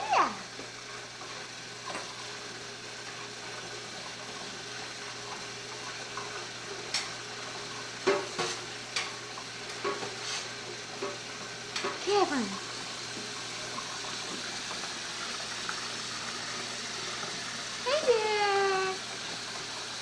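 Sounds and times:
faucet running into metal sink: 0.0s - 20.0s
water splashing and knocking: 8.0s - 8.7s.

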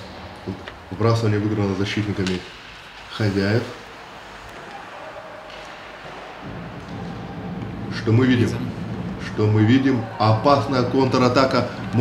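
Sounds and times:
ice rink low rumble: 0.0s - 12.0s.

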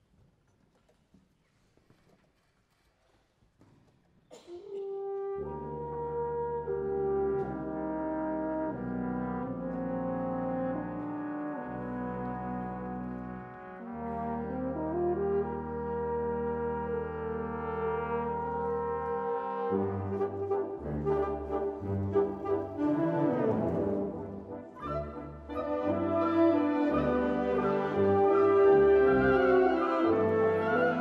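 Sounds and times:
brass and wind band chords: 4.6s - 31.0s.

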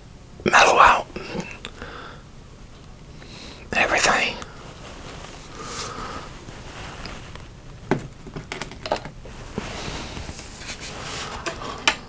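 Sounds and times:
man whispering: 0.5s - 1.6s, 3.6s - 4.5s
breathy sounds: 0.5s - 2.3s, 3.2s - 6.6s.

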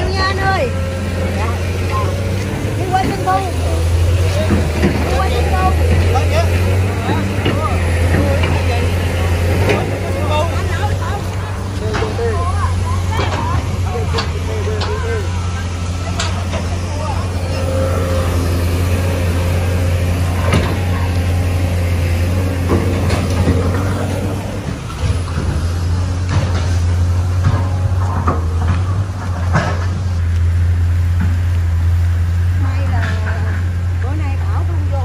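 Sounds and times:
steady low hum: 0.0s - 35.0s
voices: 0.0s - 35.0s.

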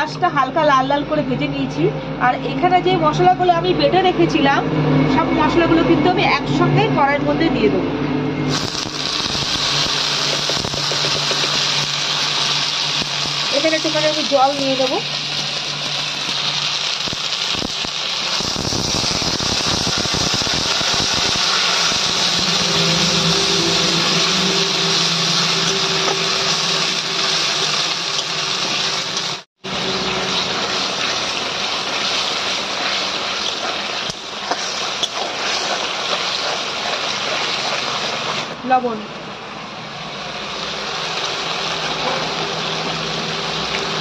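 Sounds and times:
spice paste sizzling in oil: 8.5s - 38.8s, 40.2s - 44.0s.

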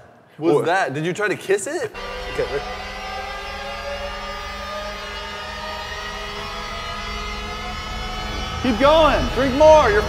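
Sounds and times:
low hum: 1.9s - 10.0s
sustained drone of held tones: 1.9s - 10.0s.

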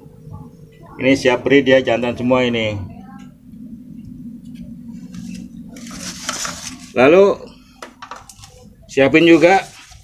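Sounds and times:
plastic cups knocking: 7.8s - 8.3s.

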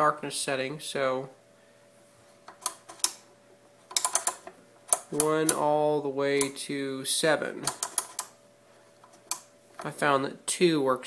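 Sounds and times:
dial clicking: 2.5s - 3.2s, 3.9s - 5.6s, 7.6s - 8.4s, 9.0s - 9.9s.

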